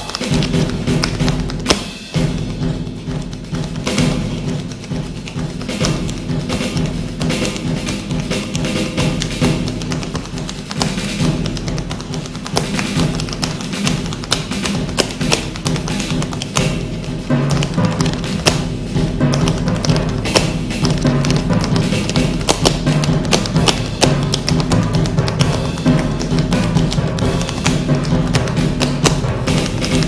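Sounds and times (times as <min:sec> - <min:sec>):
music with steady bass line: 0:00.0 - 0:30.0
tap shoes clicking on stage: 0:00.0 - 0:30.0.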